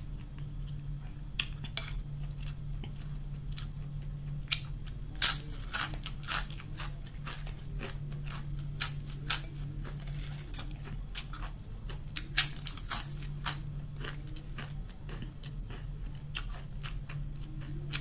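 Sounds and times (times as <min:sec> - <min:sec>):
low steady hum: 0:00.0 - 0:18.0
crunching potato chips: 0:01.5 - 0:18.0.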